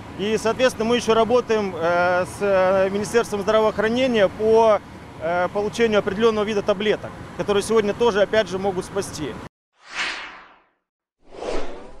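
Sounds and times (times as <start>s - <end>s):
bright swish: 9.8s - 12.0s
lower fuller swish: 9.8s - 12.0s.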